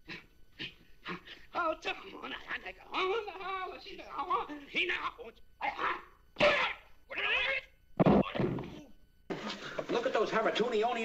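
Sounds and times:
men shouting: 5.6 - 7.7.

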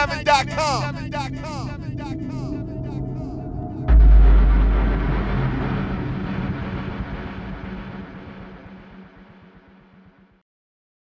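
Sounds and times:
deep cinematic boom: 2.1 - 10.4.

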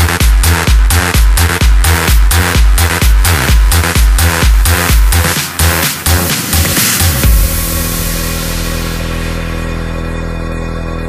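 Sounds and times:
sustained synth chord: 7.1 - 11.0.

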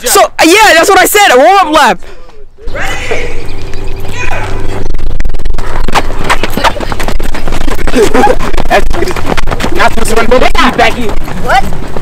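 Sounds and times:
wind rumbling on microphone: 2.7 - 12.0
running footsteps on rubber track: 5.4 - 12.0.

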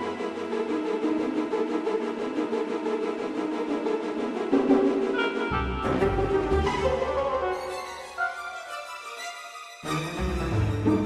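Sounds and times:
synthesized orchestral music: 0.0 - 11.0.

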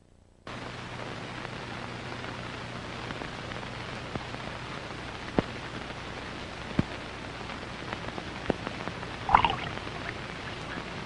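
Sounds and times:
film soundtrack hiss: 0.0 - 11.0
clicks and pops: 9.3 - 9.7.

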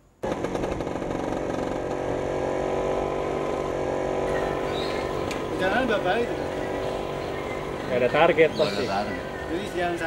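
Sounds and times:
scooter engine running: 0.2 - 10.0.

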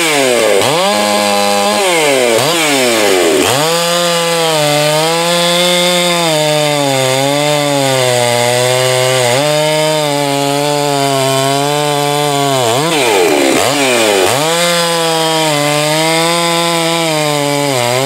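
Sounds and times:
chainsaw revving and cutting log: 0.0 - 18.0.

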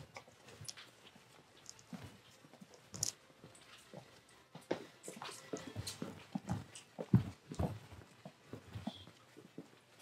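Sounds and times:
footsteps on hard floor: 3.4 - 10.0.

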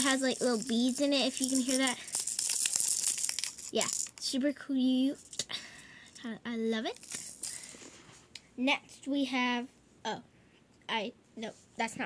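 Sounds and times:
beads rattling in plastic holder: 0.0 - 4.4, 5.1 - 6.2, 6.9 - 7.8.

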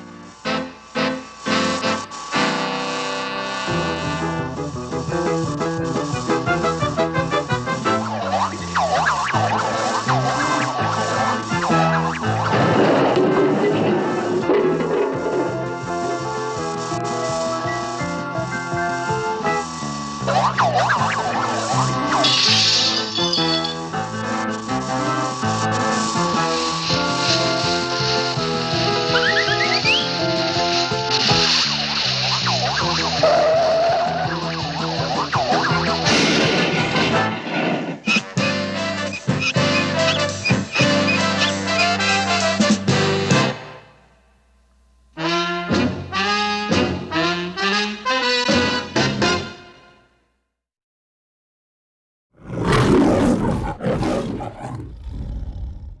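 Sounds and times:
cartoon background music: 0.3 - 37.5, 38.1 - 43.8, 45.2 - 49.8
swooping wavering sound effects: 7.0 - 12.8, 19.8 - 27.8, 28.8 - 36.1
warbling siren-like tone: 7.8 - 13.4, 20.2 - 24.0, 31.6 - 36.0
lion roaring: 52.4 - 56.0
low lion growl: 52.4 - 56.0.

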